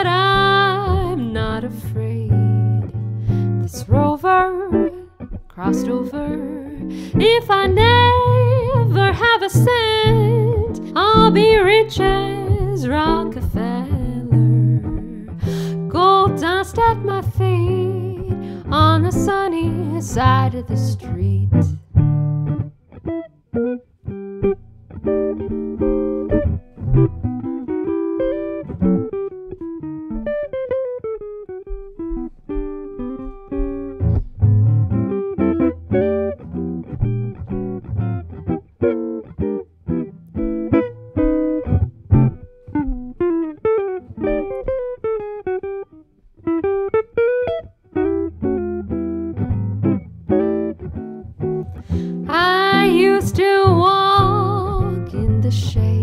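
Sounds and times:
woman singing: 0.0 - 2.9, 3.6 - 21.8, 52.2 - 56.0
jazz guitar solo: 0.0 - 56.0.

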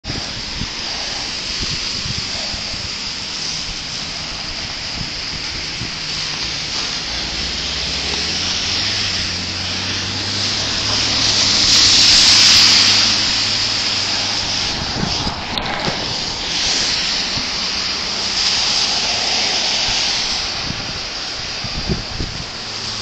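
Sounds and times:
tyres hissing on wet pavement: 0.0 - 23.0
low engine hum: 0.1 - 23.0.

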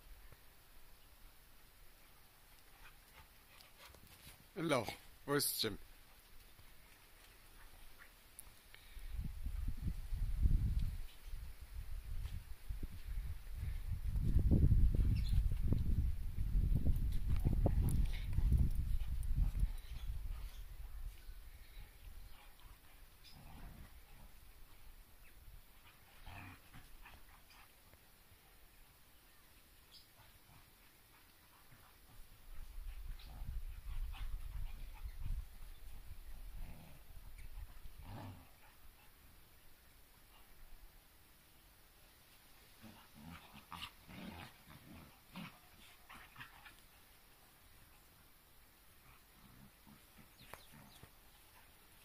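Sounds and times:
dogs scuffling and thudding: 2.6 - 5.2.

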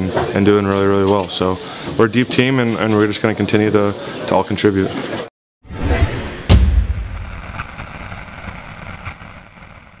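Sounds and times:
boom rumble and hiss: 5.8 - 10.0.

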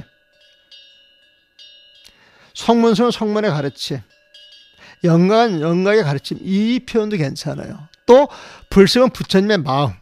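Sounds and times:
faint bell-like rings: 0.0 - 10.0.

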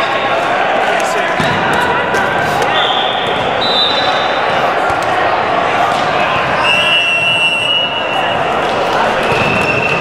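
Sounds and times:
indistinct chatter of players: 0.0 - 10.0.

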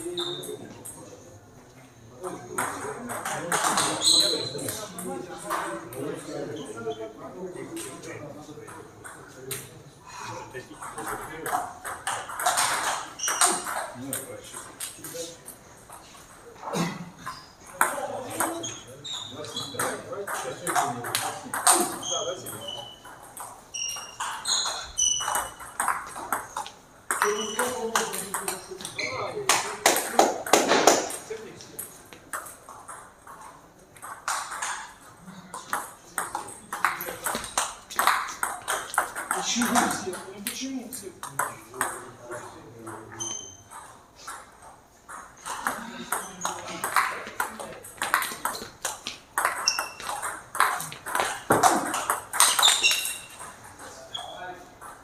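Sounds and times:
table tennis ball clicking: 45.1 - 53.7.

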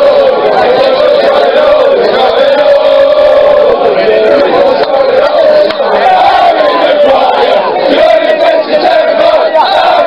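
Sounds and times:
crowd chanting and singing: 0.0 - 10.0.

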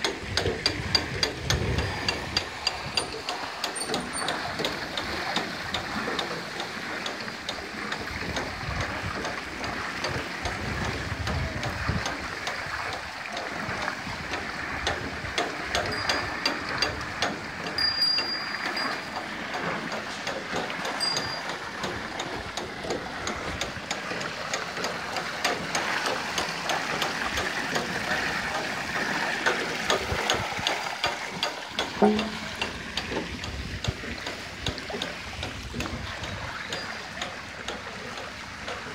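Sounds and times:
clattering iron gearing and buckets: 0.0 - 38.9
water splashing: 0.0 - 38.9.

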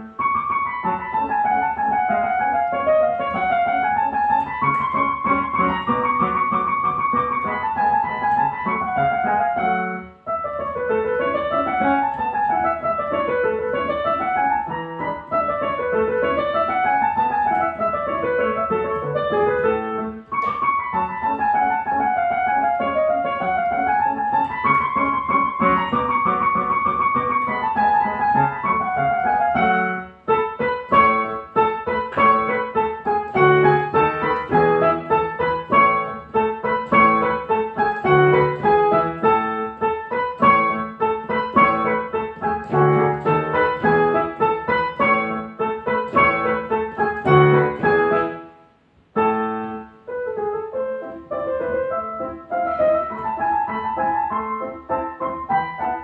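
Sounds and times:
solo piano playing: 0.0 - 56.0.

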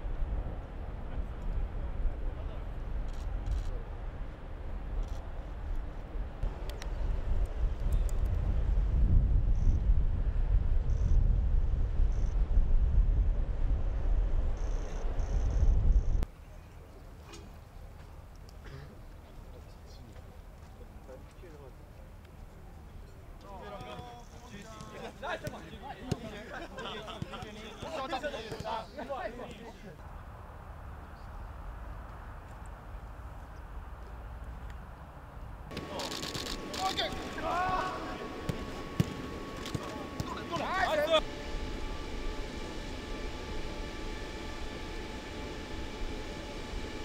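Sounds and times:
faint hum: 0.0 - 47.0
low rumble of stadium noise: 0.0 - 47.0
footballers calling out: 23.6 - 30.0, 35.7 - 41.2.

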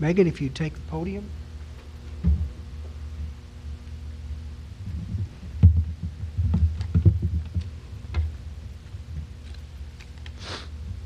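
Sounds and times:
low electrical hum: 0.0 - 11.0
thumps on lectern microphone: 2.2 - 2.6, 5.1 - 7.7.

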